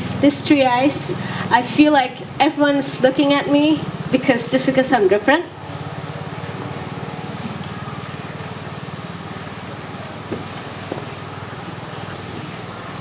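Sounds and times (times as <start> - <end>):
low mechanical hum with flutter: 0.0 - 13.0
faint knocks: 10.2 - 11.8.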